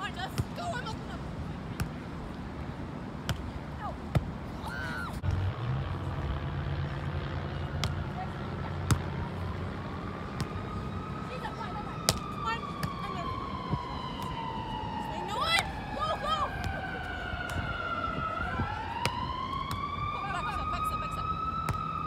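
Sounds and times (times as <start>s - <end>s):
siren wailing: 5.9s - 22.0s.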